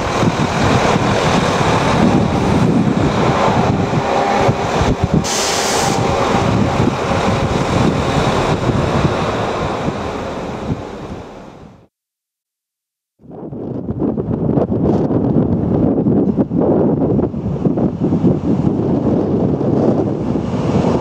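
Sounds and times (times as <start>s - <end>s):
track machine rumbling past: 0.0s - 11.7s
wind buffeting microphone: 0.0s - 11.8s, 13.3s - 21.0s
brief hiss: 5.2s - 6.0s.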